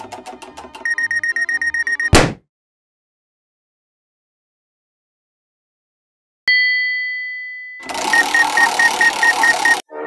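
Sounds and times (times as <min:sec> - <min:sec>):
bell-like ding: 0:06.5 - 0:07.8.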